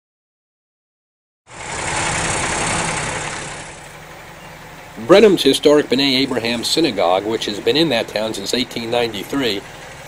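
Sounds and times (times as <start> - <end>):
loud rushing noise: 1.5 - 4.0
diesel truck engine running: 1.5 - 10.0.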